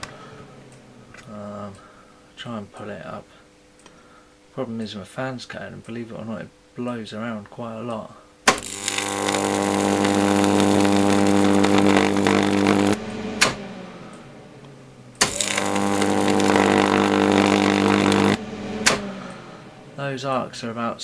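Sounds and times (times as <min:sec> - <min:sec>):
strong mains hum: 0:00.0 - 0:21.0
sharp arc snaps: 0:08.4 - 0:20.4
electric arc buzzing and crackling: 0:08.4 - 0:20.5.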